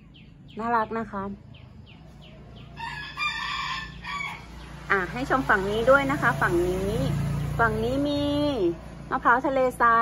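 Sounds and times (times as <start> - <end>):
rooster crowing: 2.6 - 4.7.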